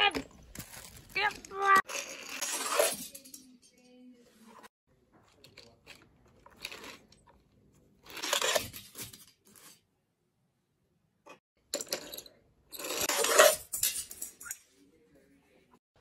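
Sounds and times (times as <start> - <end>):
toy train scraping on plastic: 1.5 - 3.2, 8.0 - 9.0, 12.8 - 13.7.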